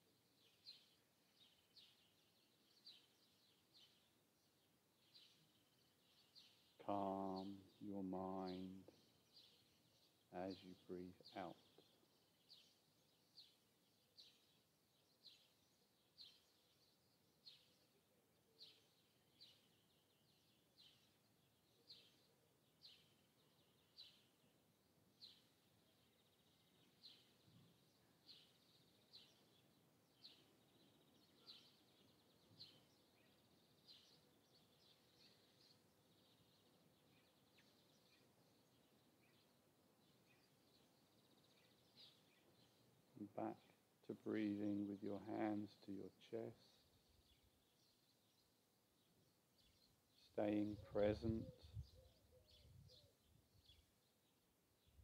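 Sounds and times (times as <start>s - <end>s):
bird chirping: 0.0s - 55.0s.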